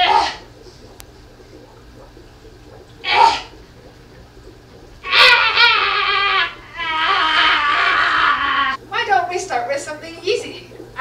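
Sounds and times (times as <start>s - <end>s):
woman whimpering wail: 5.1s - 8.8s.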